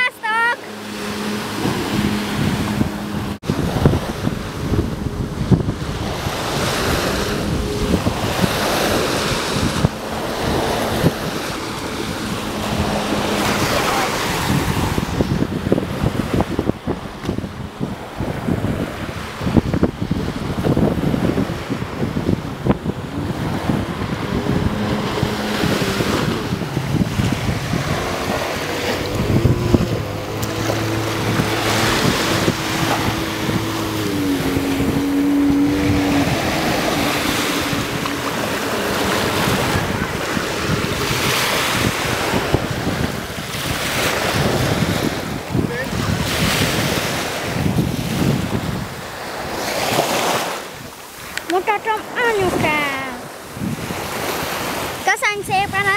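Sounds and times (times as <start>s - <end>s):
jet ski engine running: 0.0s - 55.9s
surf breaking: 0.0s - 55.9s
wind on microphone: 0.0s - 55.9s.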